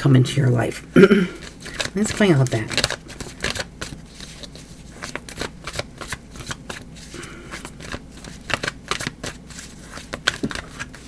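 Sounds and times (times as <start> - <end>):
cards being shuffled: 1.3 - 11.0.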